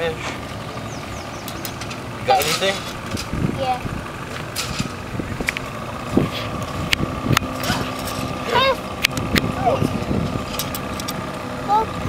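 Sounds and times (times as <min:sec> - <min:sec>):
boat engine running: 0:00.0 - 0:12.0.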